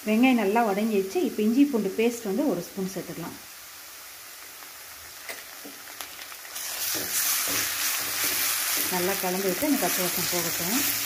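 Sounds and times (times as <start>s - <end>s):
onions frying in oil: 0.0s - 11.0s
spatula tapping a pan: 6.7s - 11.0s.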